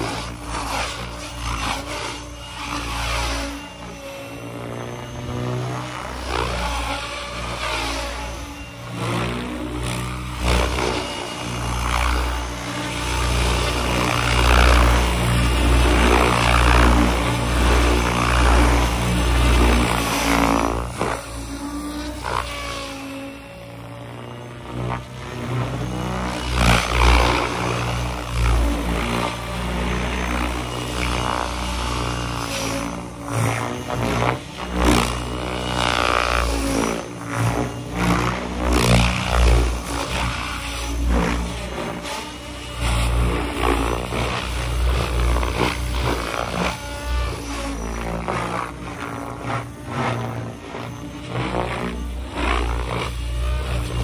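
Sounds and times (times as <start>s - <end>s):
electric motor whining: 0.0s - 54.0s
rotor blades whooshing: 0.0s - 54.0s.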